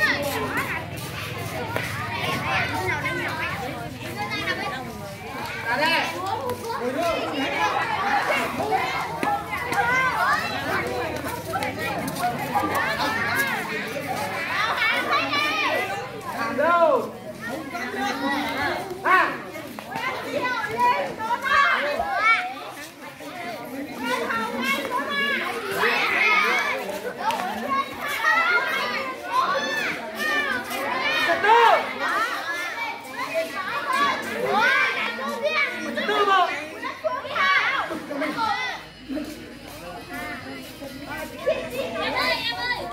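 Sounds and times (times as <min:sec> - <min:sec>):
children chattering and calling out: 0:00.0 - 0:42.9.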